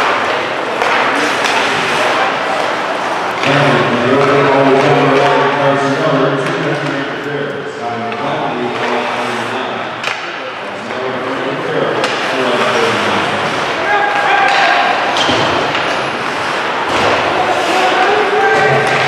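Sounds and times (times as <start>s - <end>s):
hockey sticks and puck clacking: 0.0s - 19.0s
crowd and players shouting: 12.6s - 19.0s.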